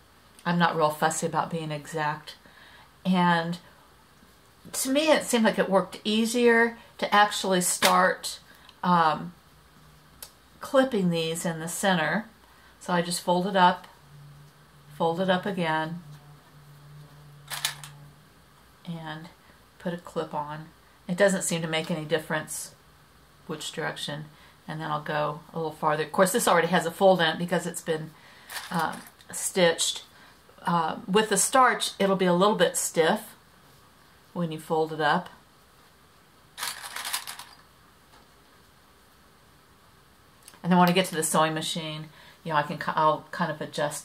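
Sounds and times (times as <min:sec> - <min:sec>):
faint low hum: 0:00.0 - 0:44.0.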